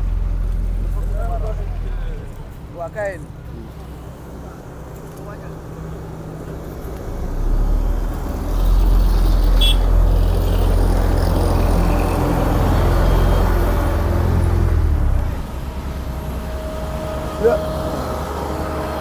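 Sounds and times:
road roller diesel engine rumbling: 0.0s - 19.0s.

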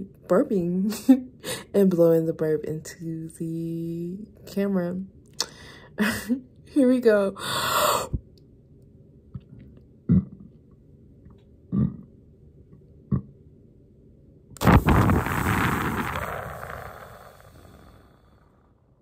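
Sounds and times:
woman burping: 10.1s - 10.4s, 11.7s - 12.1s
breathy blow through lips: 14.6s - 18.7s.

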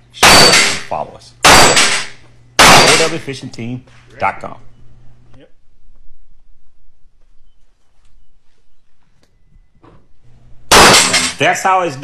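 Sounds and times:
gunshot with echo: 1.5s - 3.2s, 10.7s - 11.4s.

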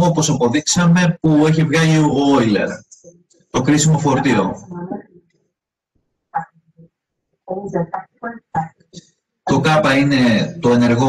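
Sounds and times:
man speaking: 0.0s - 3.0s, 3.6s - 4.7s, 9.5s - 11.0s.

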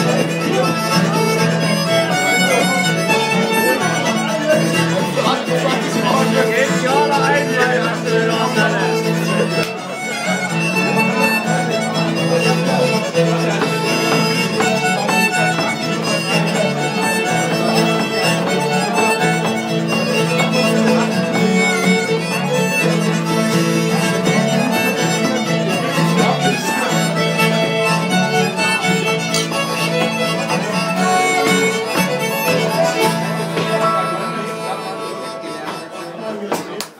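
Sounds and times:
acoustic guitar strumming: 0.0s - 36.8s
fiddle playing tune: 0.0s - 36.9s.

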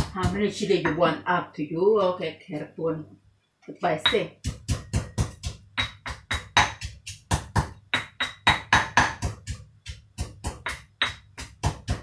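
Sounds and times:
pestle pounding in stone mortar: 0.0s - 1.0s, 4.0s - 12.0s.

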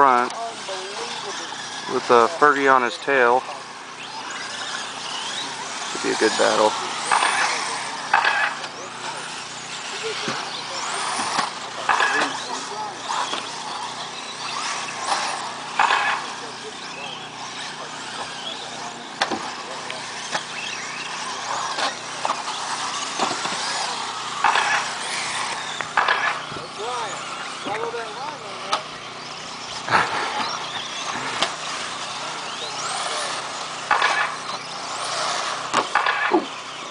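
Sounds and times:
electric rc car motors whining: 0.0s - 36.9s.

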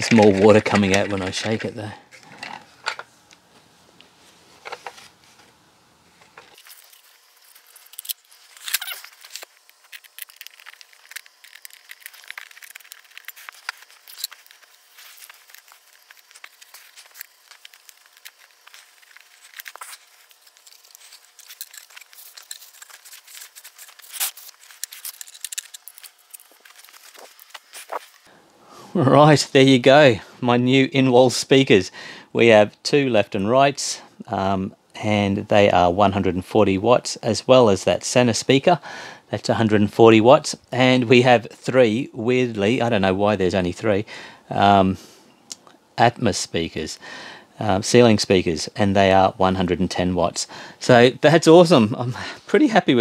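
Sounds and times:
cloth rubbing plastic: 6.1s - 28.3s.

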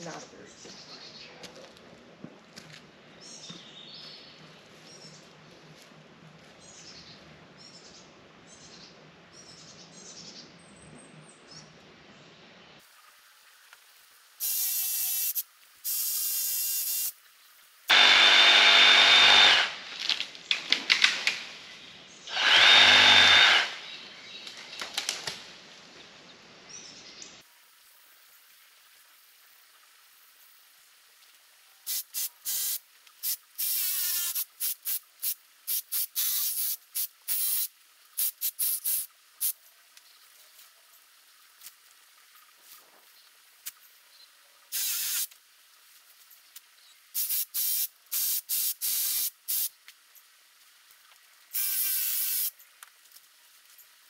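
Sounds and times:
birds chirping: 0.0s - 1.8s, 21.6s - 25.0s
power saw cutting branch: 17.9s - 21.5s, 22.3s - 23.9s
branch crackling through leaves: 19.7s - 21.7s, 24.4s - 25.7s.

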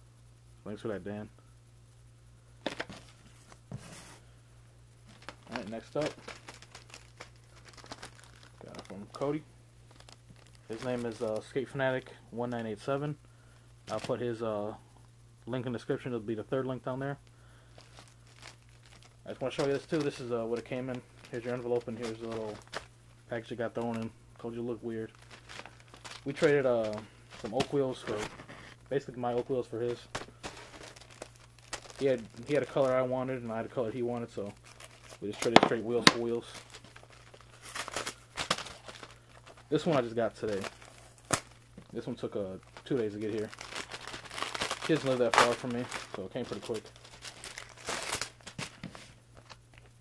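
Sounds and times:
faint steady hum: 0.0s - 50.0s
packaging crinkling: 5.0s - 11.6s, 13.9s - 14.2s, 17.5s - 50.0s.

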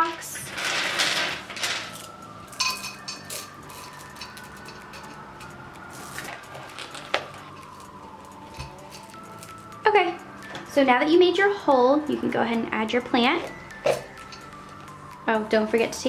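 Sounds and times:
pebbles clinking in a pot: 0.0s - 9.6s.

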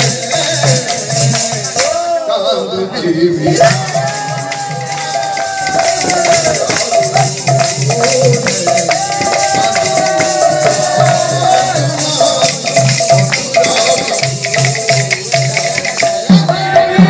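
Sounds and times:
barrel drums in steady rhythm: 0.0s - 2.2s, 3.4s - 17.0s
jingling metal percussion: 0.0s - 2.3s, 3.3s - 17.0s.

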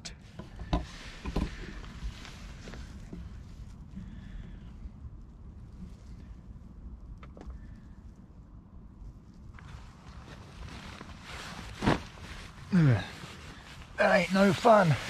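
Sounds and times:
rustle: 0.2s - 15.0s.

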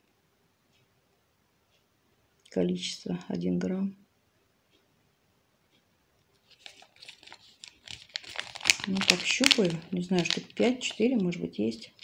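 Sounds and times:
seed packet crinkling: 6.4s - 12.0s.

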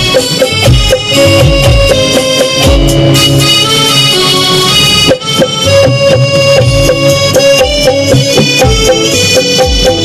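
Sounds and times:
instrumental band music: 0.0s - 10.0s
keyboard melody: 0.0s - 10.0s.

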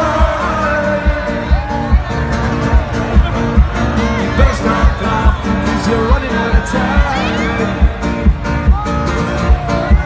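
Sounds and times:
low thumping beat: 0.0s - 10.0s.

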